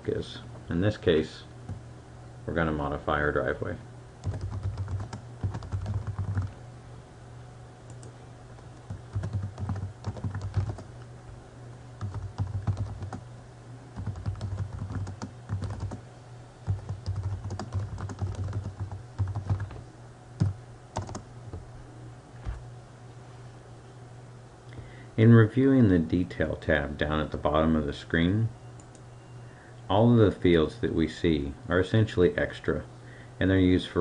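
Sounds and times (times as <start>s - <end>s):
typing on computer keyboard: 4.2s - 6.5s, 8.9s - 10.9s, 12.0s - 13.2s, 14.0s - 16.0s, 16.7s - 19.7s, 20.4s - 21.2s.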